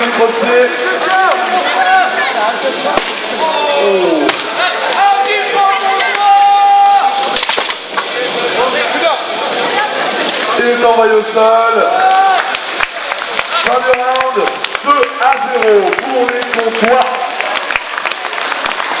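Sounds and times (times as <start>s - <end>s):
voices shouting: 0.7s - 7.4s.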